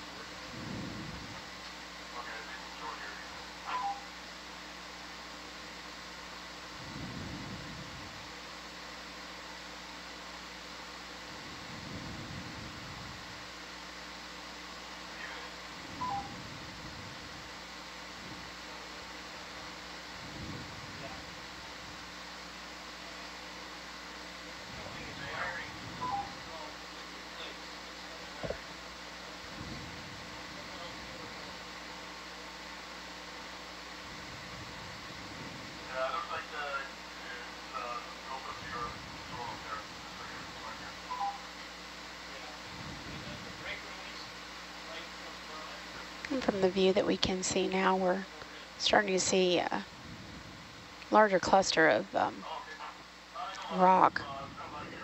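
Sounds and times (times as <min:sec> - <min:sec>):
audio feed hum and hiss: 0:00.0 - 0:55.0.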